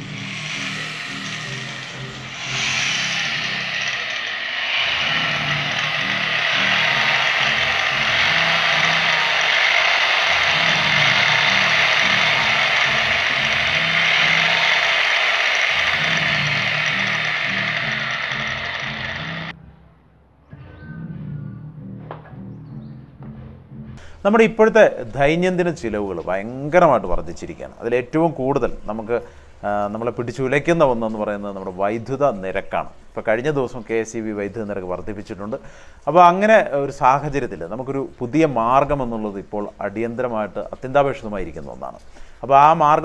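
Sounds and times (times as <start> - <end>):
loud rushing whirring noise: 0.0 - 19.6.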